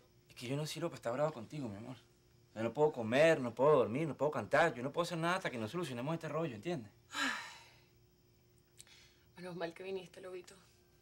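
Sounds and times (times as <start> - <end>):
faint hum: 0.0 - 11.0
person sighing: 7.1 - 7.7.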